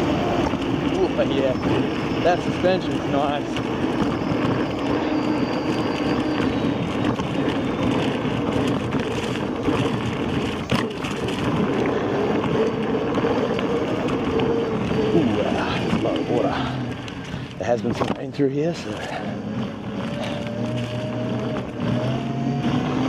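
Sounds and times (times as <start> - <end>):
electric motor hum: 0.0 - 23.0
tyre and wind noise: 0.0 - 23.0.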